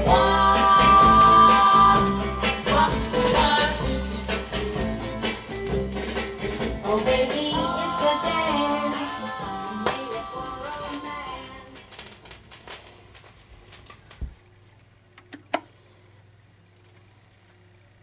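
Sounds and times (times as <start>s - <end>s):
pop record playing on turntable: 0.0s - 14.5s.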